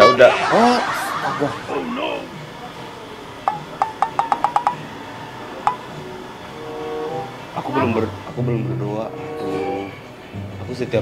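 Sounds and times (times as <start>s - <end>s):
faint background music: 0.0s - 11.0s
sharp ringing clicks: 3.5s - 4.9s, 5.6s - 6.0s.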